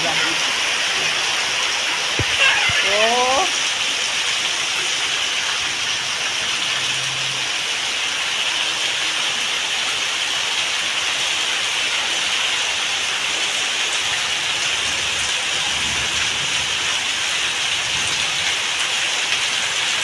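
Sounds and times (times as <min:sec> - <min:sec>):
heavy rain on concrete: 0:00.0 - 0:20.0
runoff splashing from roof: 0:00.0 - 0:20.0.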